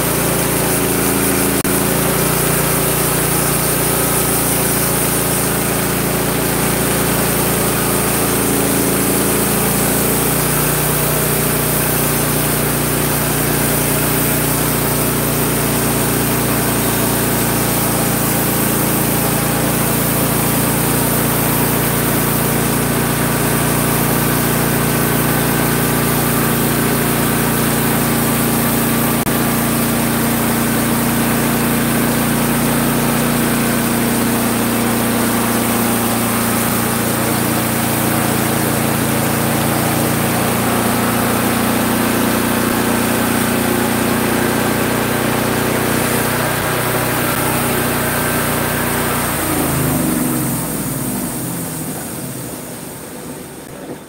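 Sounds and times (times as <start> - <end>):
band saw cutting log: 0.0 - 53.0
gas engine running: 0.0 - 54.0.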